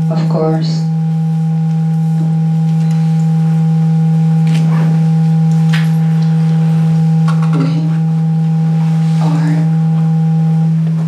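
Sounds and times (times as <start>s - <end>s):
faint higher steady tones: 0.0s - 11.0s
low electronic drone: 0.0s - 11.0s.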